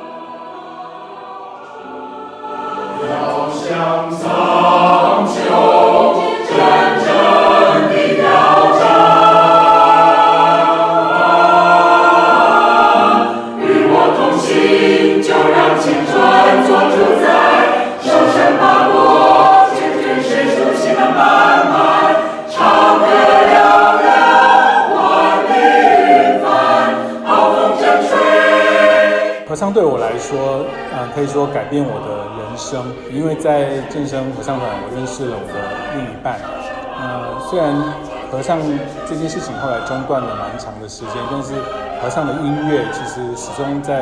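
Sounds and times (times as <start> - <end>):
mixed choir singing: 0.0 - 44.0.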